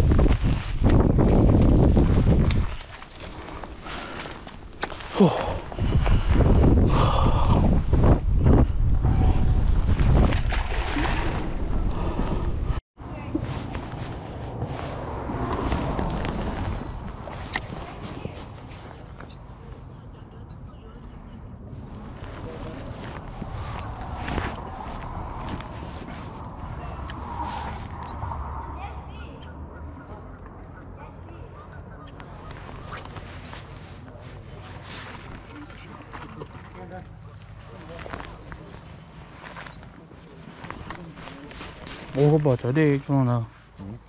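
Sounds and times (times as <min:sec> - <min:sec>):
wind rumbling on microphone: 0:00.0 - 0:19.9, 0:21.4 - 0:35.8.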